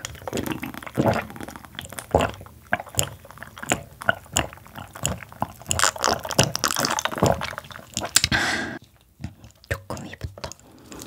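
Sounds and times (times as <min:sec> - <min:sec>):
gulping and swallowing: 0:00.0 - 0:08.4, 0:09.2 - 0:11.0
breath out: 0:08.2 - 0:08.8.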